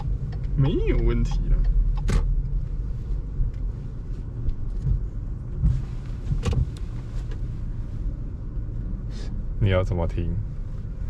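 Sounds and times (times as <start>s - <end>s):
car engine rumble from inside: 0.0s - 11.0s.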